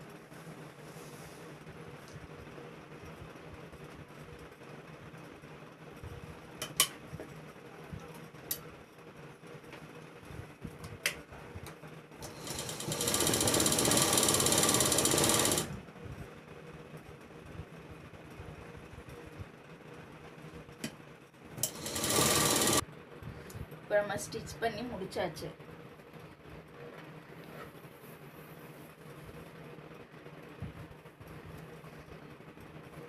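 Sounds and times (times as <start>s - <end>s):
sewing machine stitching: 12.2s - 15.8s, 21.6s - 22.8s.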